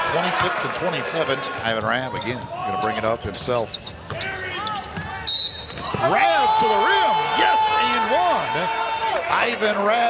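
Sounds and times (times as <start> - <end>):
sneakers squeaking: 1.8 - 6.2.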